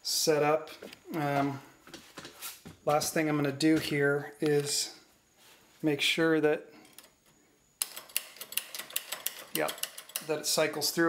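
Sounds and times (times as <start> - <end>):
quick metal clicks and clacks: 7.8 - 10.6.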